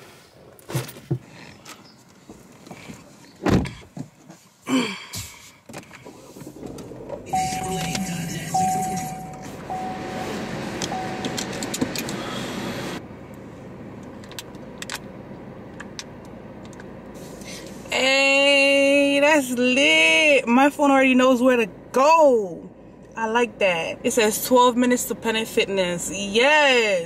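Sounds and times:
thumps in car: 0:02.2 - 0:04.4
car warning chime beeping: 0:07.2 - 0:12.8.

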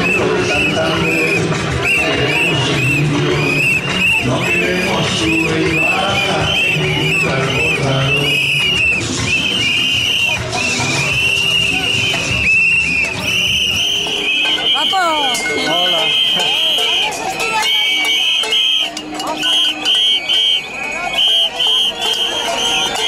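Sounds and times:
crowd voices: 0:00.0 - 0:23.0
shrill whistle blasts: 0:00.0 - 0:23.0.

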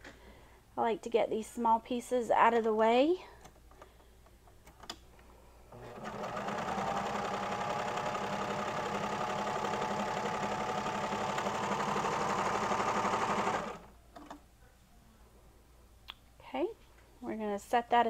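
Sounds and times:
overlocker sewing machine running: 0:05.7 - 0:13.9.

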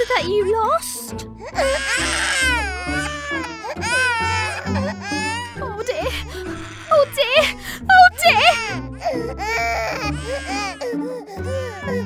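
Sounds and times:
background music: 0:00.0 - 0:12.0
baby crying: 0:01.5 - 0:12.0.

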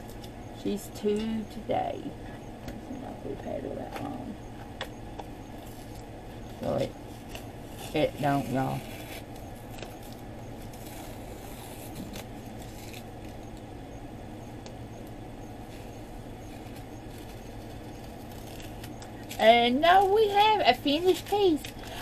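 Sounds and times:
air conditioner and fan whoosh: 0:00.0 - 0:22.0.

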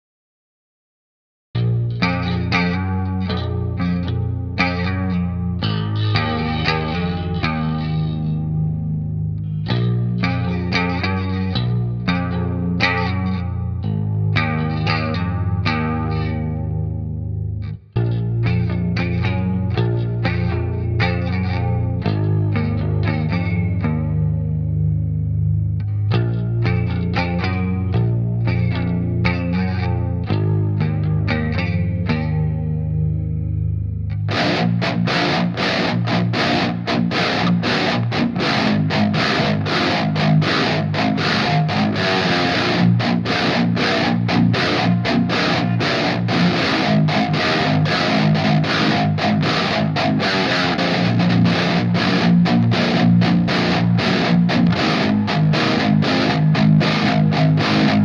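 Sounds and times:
electric guitar playing: 0:01.6 - 0:58.0.

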